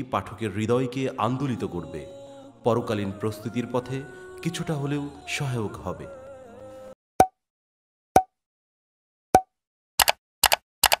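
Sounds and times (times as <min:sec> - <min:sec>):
mouse click effect: 0:09.4 - 0:11.0
pop sound effect: 0:09.4 - 0:11.0.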